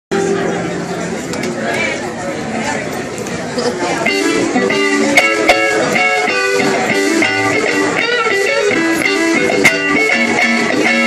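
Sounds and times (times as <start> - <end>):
people chattering: 0.1 - 11.0.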